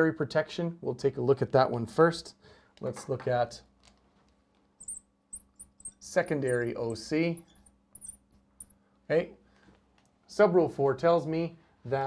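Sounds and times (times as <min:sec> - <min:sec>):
marker squeaking on glass: 0:04.8 - 0:08.8.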